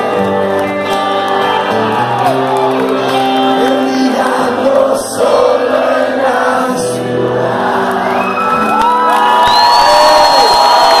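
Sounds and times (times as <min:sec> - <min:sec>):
audience whoops and cheers: 0:00.0 - 0:03.6, 0:07.8 - 0:11.0
live rock band with singing: 0:00.0 - 0:10.9.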